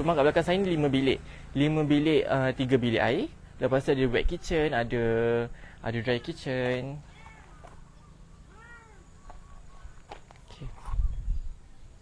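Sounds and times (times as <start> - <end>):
cat meowing: 7.0 - 7.7, 8.5 - 9.2.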